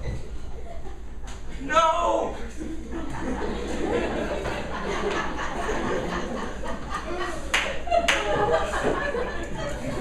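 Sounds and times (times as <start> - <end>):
murmur of voices: 0.0 - 10.0
hand claps: 7.5 - 8.4.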